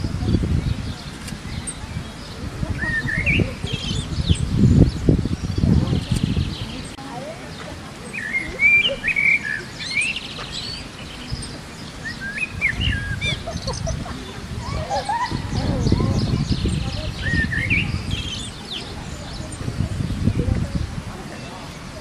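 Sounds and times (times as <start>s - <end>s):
birds chirping and twittering: 0.0s - 22.0s.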